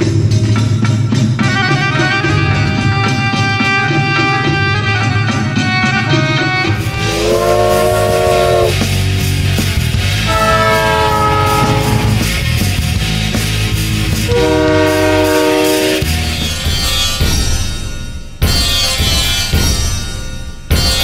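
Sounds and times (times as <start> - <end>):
moving train rumble: 4.9 - 21.0
train horn blasts: 6.5 - 9.0, 10.2 - 12.6, 14.2 - 16.3.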